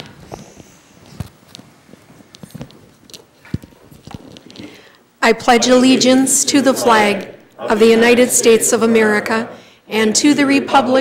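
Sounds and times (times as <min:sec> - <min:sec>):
footsteps of people shifting: 0:00.0 - 0:05.1.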